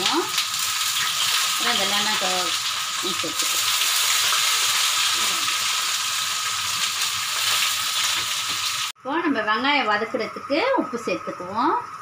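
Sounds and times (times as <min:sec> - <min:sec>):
onions sizzling in hot oil: 0:00.0 - 0:09.0.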